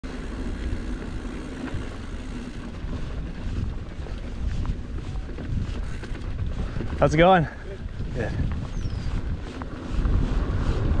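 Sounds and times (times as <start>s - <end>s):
bike rolling over dirt trail: 0.0s - 11.0s
wind buffeting microphone: 0.1s - 11.0s.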